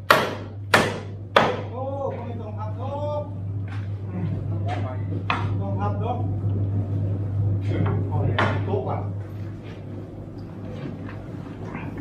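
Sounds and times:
low hum: 1.1s - 12.0s
workers talking: 1.6s - 9.8s.

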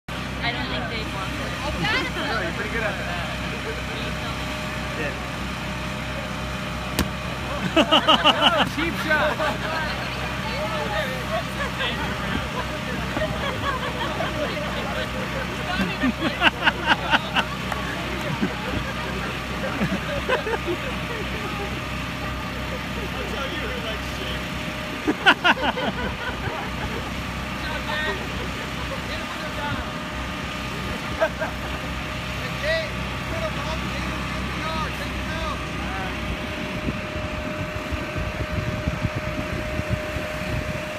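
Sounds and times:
air blower humming: 2.0s - 40.9s
sharp knock: 7.0s - 7.2s
laughter: 7.6s - 10.0s, 10.8s - 21.7s, 25.0s - 27.1s, 31.0s - 32.0s.

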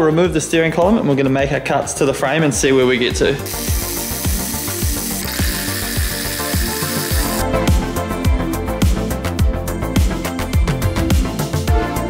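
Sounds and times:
background music with steady beat: 0.0s - 12.0s
socket wrench ratcheting: 3.4s - 7.4s.

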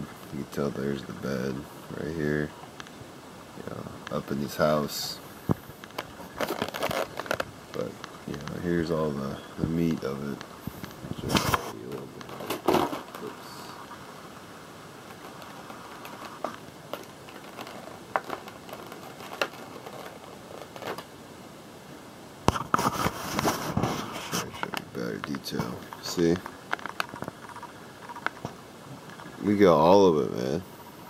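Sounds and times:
plastic package clicks and crinkles: 5.8s - 8.6s, 15.1s - 21.1s.

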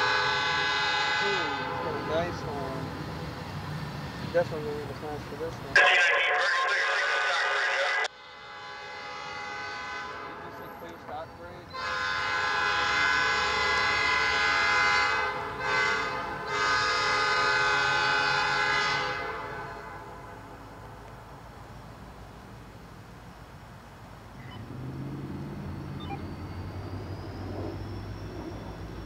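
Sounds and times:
locomotive air horn blasts: 0.0s - 2.6s, 5.8s - 20.8s
low rumble of approaching train: 0.0s - 5.7s, 8.1s - 29.0s.

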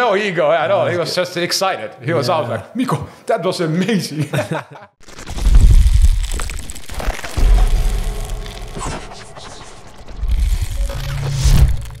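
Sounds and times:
crackling: 5.0s - 12.0s
deep bass booms: 7.3s - 12.0s.

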